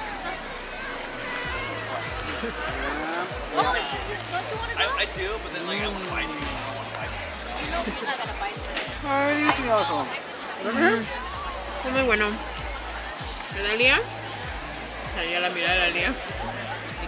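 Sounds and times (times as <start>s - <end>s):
background music with bass line: 0.0s - 17.0s
voices: 0.0s - 17.0s.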